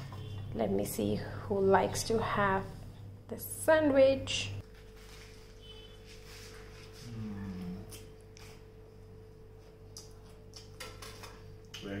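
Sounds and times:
person chewing: 9.6 - 10.8.

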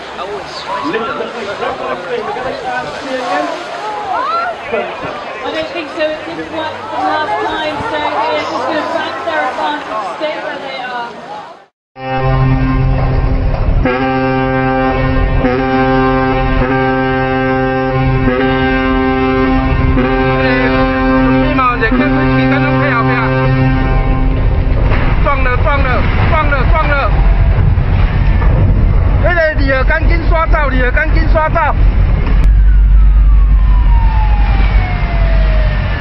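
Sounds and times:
ship's horn blast: 2.8 - 4.3, 5.4 - 9.7, 12.0 - 28.4
low rumble: 12.0 - 36.0.

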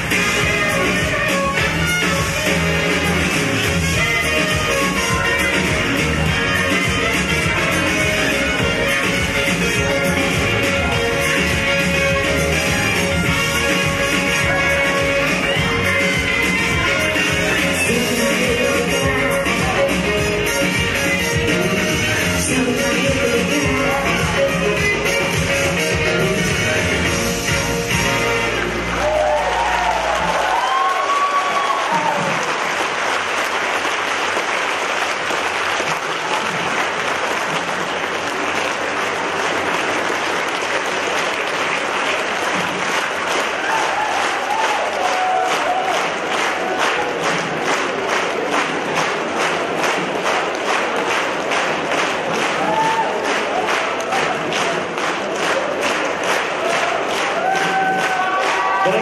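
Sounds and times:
audience applauding and cheering: 0.0 - 24.6, 27.8 - 59.0
band music: 0.0 - 30.5
rhythmic clapping in unison: 0.0 - 59.0.

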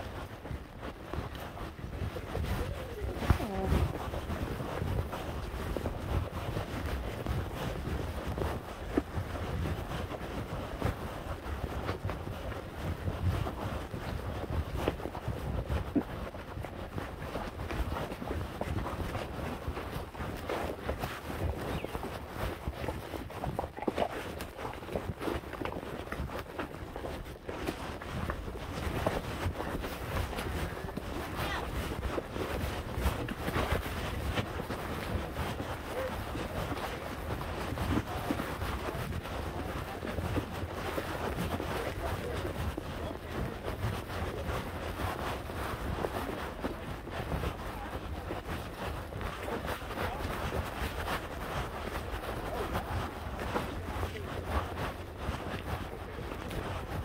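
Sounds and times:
horse hooves walking: 0.0 - 57.0
wind on microphone: 0.0 - 57.0.

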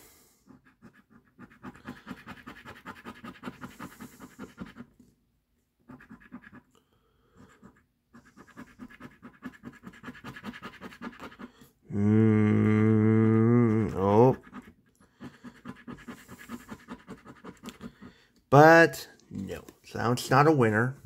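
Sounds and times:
coin scraping scratch card: 0.5 - 5.0, 5.9 - 6.7, 7.4 - 11.6, 14.0 - 18.1.

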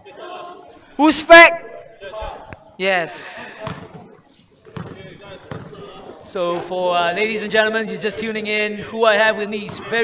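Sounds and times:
basketball bouncing on hard court: 3.6 - 4.0, 4.7 - 6.0.

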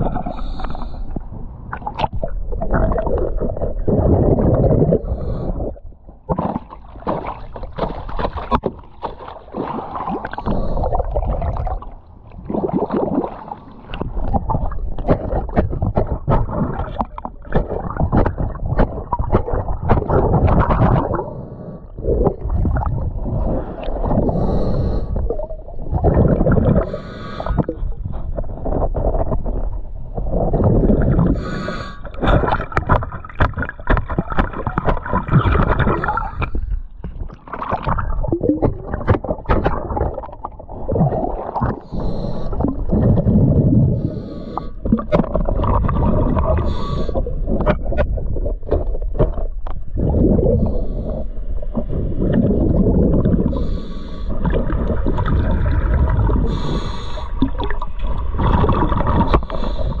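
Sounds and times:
gurgling exhaled bubbles: 0.0 - 60.0
diver inhaling through regulator: 0.1 - 1.3, 4.8 - 5.8, 10.3 - 11.4, 23.4 - 25.4, 26.4 - 27.9, 30.9 - 32.6, 41.7 - 45.1, 45.8 - 47.5, 50.2 - 52.1, 53.3 - 57.9, 58.9 - 60.0.

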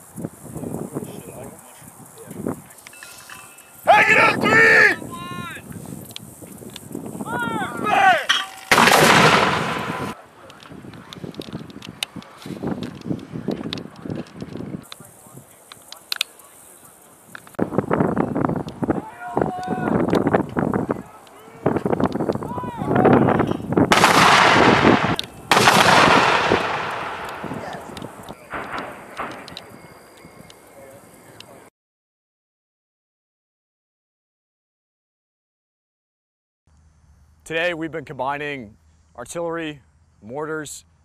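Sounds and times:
faint booms: 8.2 - 10.2, 23.4 - 30.4
mortar firing blast: 8.3 - 10.2, 23.8 - 30.0.

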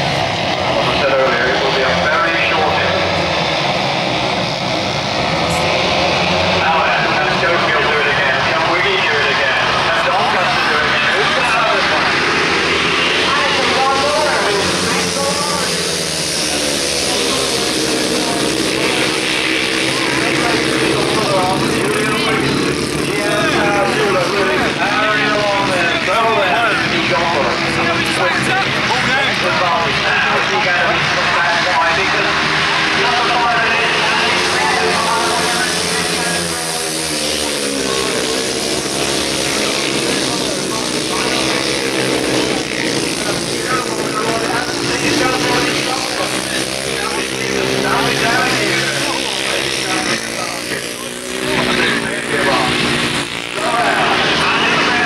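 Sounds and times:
racing motorcycles passing: 0.0 - 55.0.

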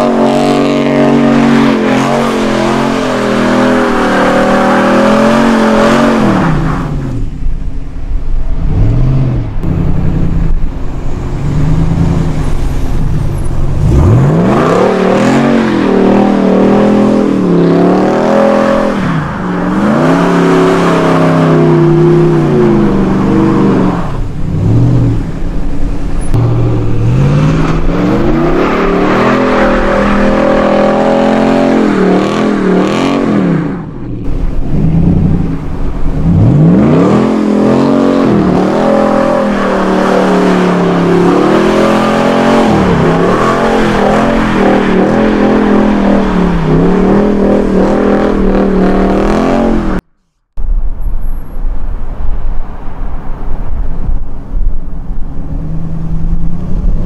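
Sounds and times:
truck engine revving hard: 0.0 - 7.2, 13.7 - 25.4, 26.3 - 50.1.

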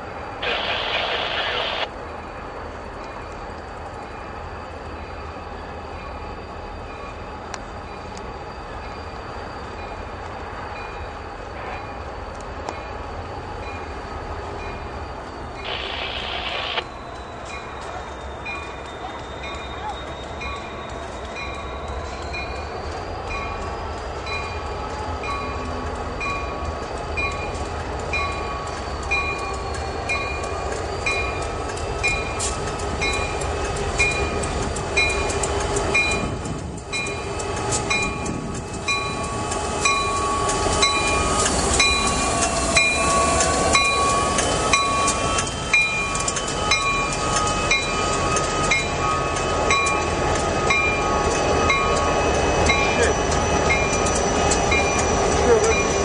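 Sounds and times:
diesel locomotives rolling past: 0.0 - 56.0
locomotive bell ringing: 13.6 - 56.0.

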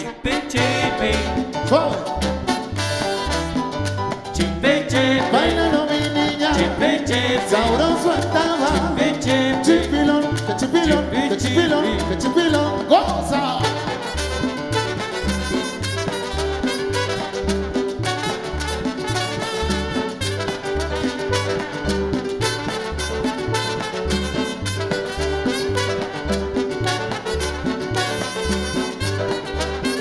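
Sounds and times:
live salsa band playing: 0.0 - 30.0
trombones playing: 0.0 - 30.0.

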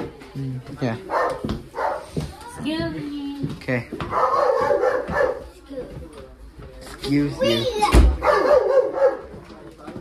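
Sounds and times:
dog barking: 1.1 - 2.1, 4.1 - 5.5, 8.2 - 9.4.

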